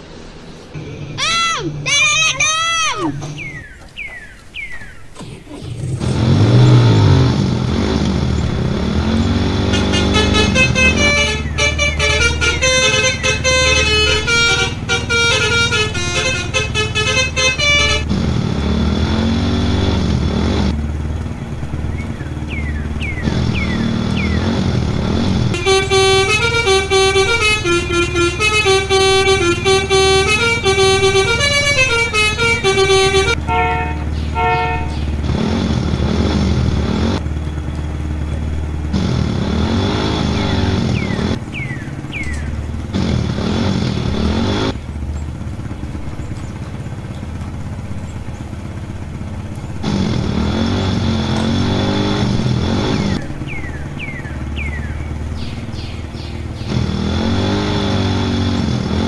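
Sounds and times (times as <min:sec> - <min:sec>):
low engine hum: 0:00.0 - 0:59.0
multi-tone horn tune: 0:09.4 - 0:18.2, 0:25.5 - 0:35.1.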